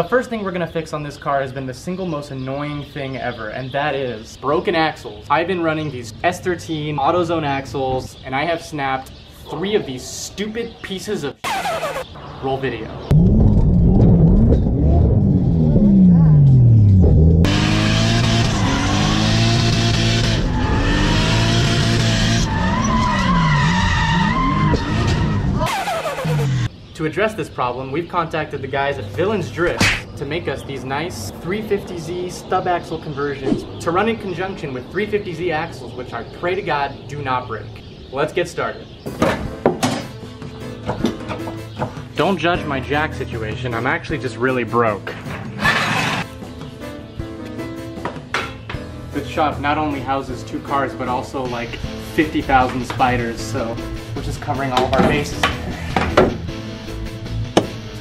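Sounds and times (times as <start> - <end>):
tyre squeal: 11.4 - 12.2, 20.3 - 26.7
car engine revving: 13.1 - 26.7
background music with held notes: 38.9 - 58.0.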